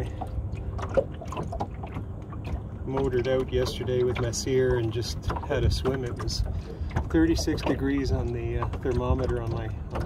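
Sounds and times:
water lapping against a hull: 0.0 - 10.0.

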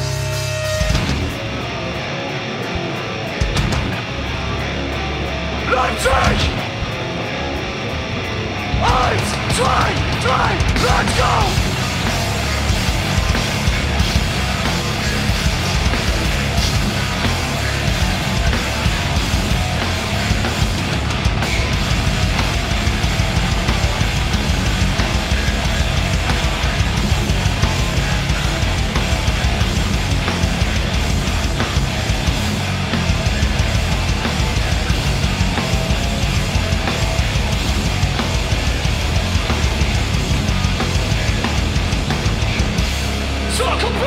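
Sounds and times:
bass guitar: 0.0 - 44.0
distorted electric guitars: 0.0 - 44.0
driving drums: 0.0 - 44.0
hardcore band playing live: 0.0 - 44.0.

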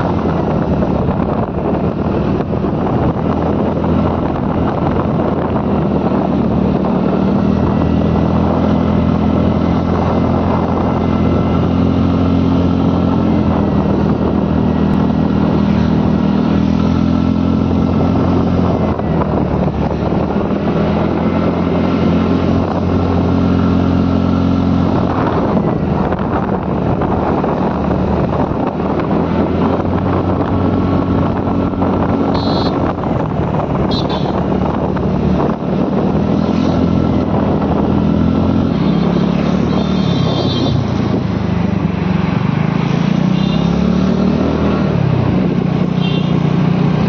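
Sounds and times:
road noise: 0.0 - 47.0
wind buffeting microphone: 0.0 - 47.0
scooter engine running: 32.3 - 35.3.

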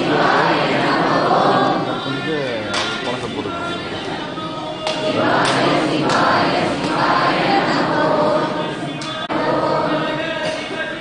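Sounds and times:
group singing devotional song: 0.0 - 11.0.

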